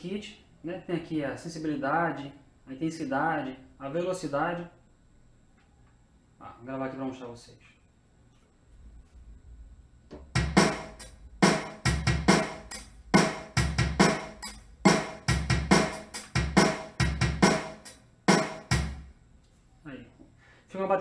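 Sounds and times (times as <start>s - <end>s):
rock drum beat: 10.2s - 19.1s.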